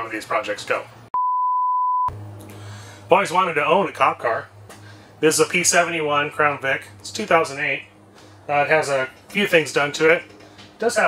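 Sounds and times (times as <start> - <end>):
high-pitched censor beep: 1.2 - 2.2.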